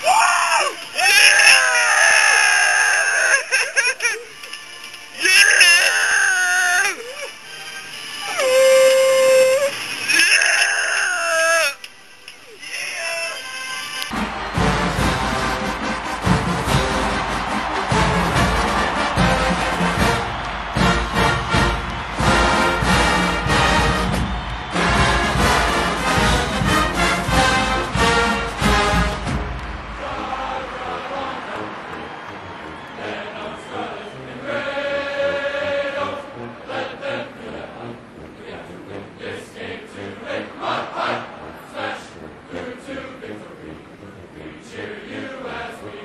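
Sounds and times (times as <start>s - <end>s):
marching band music with drums: 14.1s - 30.1s.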